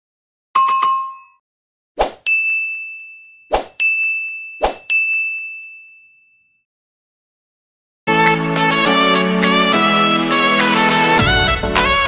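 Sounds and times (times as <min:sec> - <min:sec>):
bell ding: 0:02.3 - 0:06.6.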